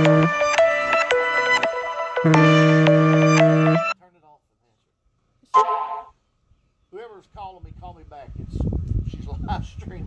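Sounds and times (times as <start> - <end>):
car horn honk: 0.0 - 0.6, 2.1 - 4.0, 5.5 - 6.2.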